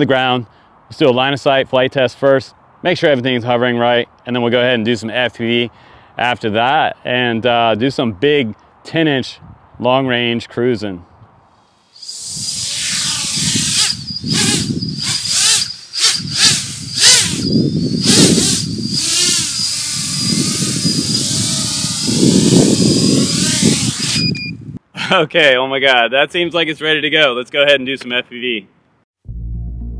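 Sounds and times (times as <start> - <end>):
quadcopter propellers hovering: 12.0 - 24.4
high motor whine: 12.0 - 24.6.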